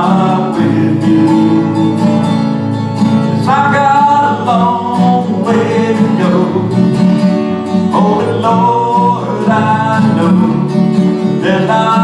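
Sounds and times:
man singing: 0.0 - 2.4, 3.3 - 7.1, 7.9 - 12.0
bass guitar: 0.0 - 12.0
strummed acoustic guitar: 0.0 - 12.0.

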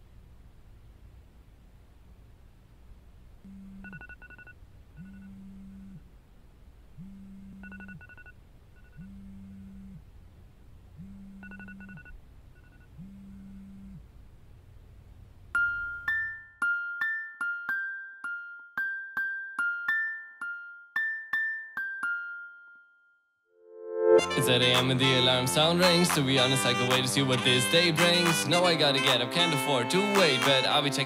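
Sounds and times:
smartphone alarm buzzing: 3.5 - 6.0, 7.0 - 10.0, 11.0 - 14.0
electric piano notes: 23.7 - 25.7.

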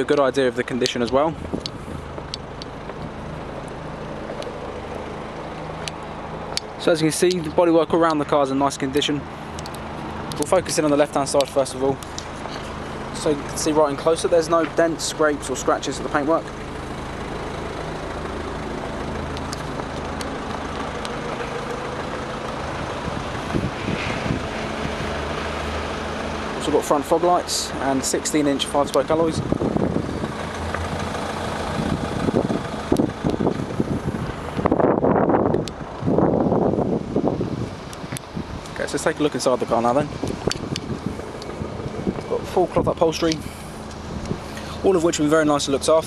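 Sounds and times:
engine idling: 0.0 - 46.0
outdoor background noise: 0.0 - 46.0
wind on microphone: 22.8 - 25.4, 29.4 - 38.7, 40.1 - 42.4.

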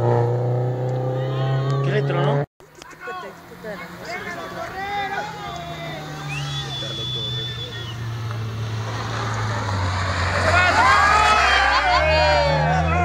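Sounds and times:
rally car engine approaching: 0.0 - 13.0
spectators' voices: 1.2 - 13.0.

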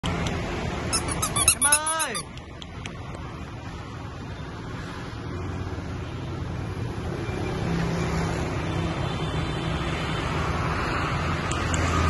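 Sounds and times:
high-pitched squeaks: 0.9 - 2.4.

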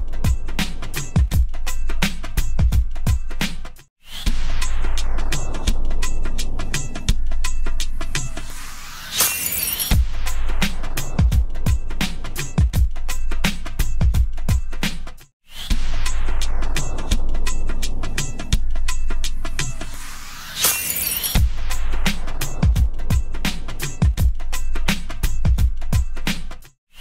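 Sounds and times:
ident music beat: 0.0 - 8.5, 9.9 - 20.0, 20.6 - 26.7
bright sparkling burst: 8.4 - 10.2, 19.9 - 21.8.

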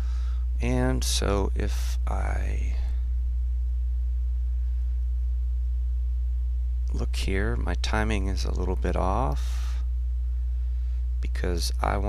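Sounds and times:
mains hum: 0.0 - 12.0.

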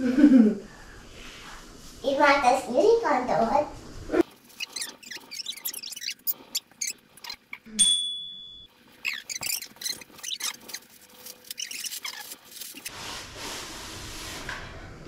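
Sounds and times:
wrapping paper rustling and tearing: 9.0 - 13.0.

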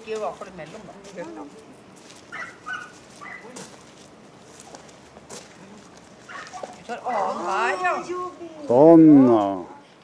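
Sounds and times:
footsteps on gravel: 0.0 - 8.4
faint dog sounds: 2.3 - 3.8, 5.6 - 8.1.

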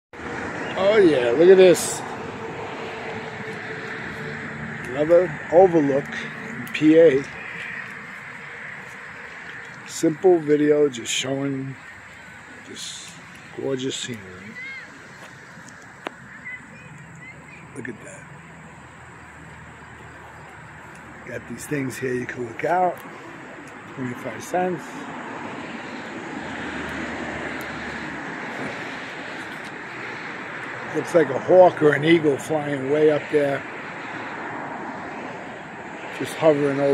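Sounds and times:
outdoor background noise: 0.1 - 36.9
distant mechanical drone: 0.2 - 36.9.

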